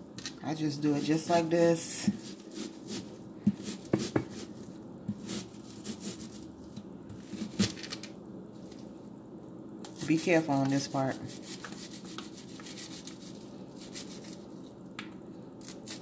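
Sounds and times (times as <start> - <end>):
knife slicing onion on board: 2.0 - 4.5, 5.1 - 6.4, 10.0 - 14.4, 15.6 - 16.0.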